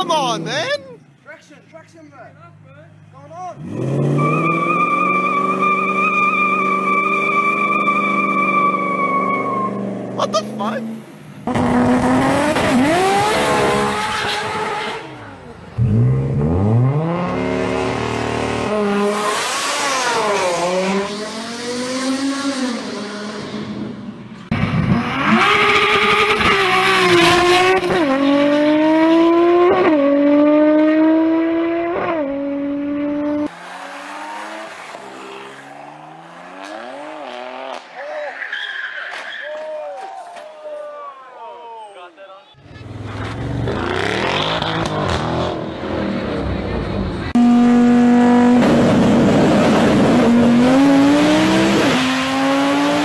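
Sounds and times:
intake and exhaust rush: 0.0s - 39.6s, 42.6s - 53.0s
another car engine revving: 3.6s - 38.0s, 42.6s - 53.0s
car engine revving and accelerating: 3.6s - 38.0s, 42.7s - 53.0s
tyre squeal: 4.2s - 9.8s, 38.0s - 40.3s.

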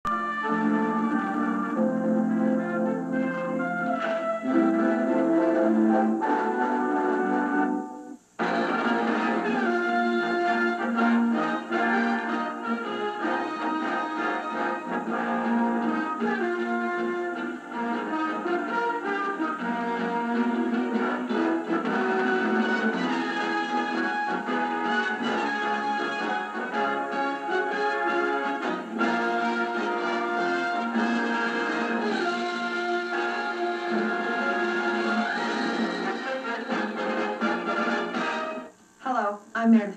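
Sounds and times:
orchestral theme music with brass: 0.1s - 38.7s.

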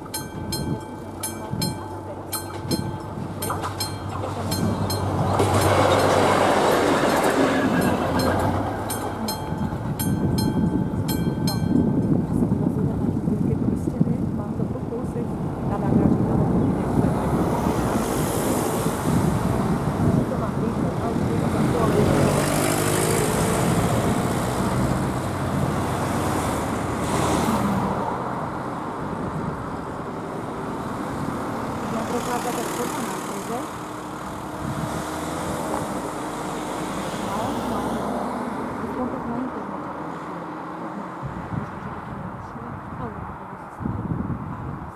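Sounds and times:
level crossing bell ringing: 0.0s - 6.6s, 7.6s - 12.2s
cars driving past: 0.0s - 13.9s, 15.0s - 44.9s
diesel railcar engine running: 0.0s - 14.6s.

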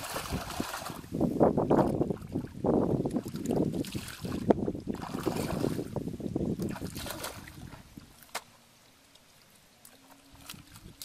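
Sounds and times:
footsteps sloshing through muddy water: 0.0s - 6.0s, 6.6s - 8.5s, 9.1s - 11.0s
wind on microphone: 0.0s - 8.3s, 10.3s - 11.0s.

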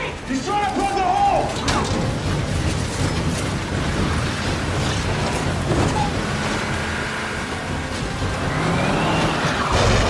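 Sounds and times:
large vehicle engine: 0.0s - 10.0s
tone rising in pitch: 8.4s - 10.0s.

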